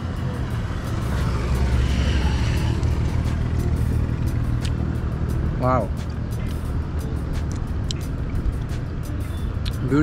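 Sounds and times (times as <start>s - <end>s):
vehicle engine rumble passing: 0.0s - 10.0s.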